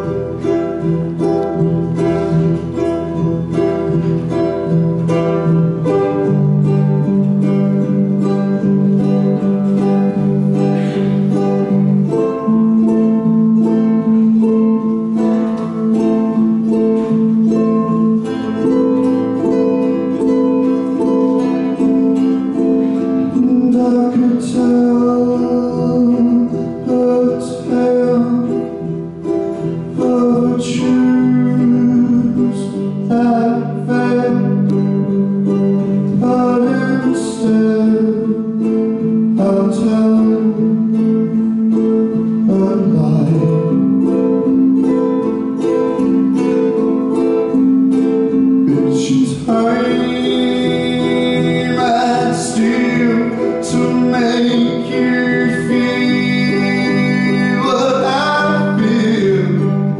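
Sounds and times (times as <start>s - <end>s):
acoustic guitar: 0.0s - 59.9s
ukulele: 0.0s - 59.9s
man singing low notes: 23.3s - 29.0s, 29.9s - 34.8s, 39.3s - 41.0s, 48.7s - 59.9s.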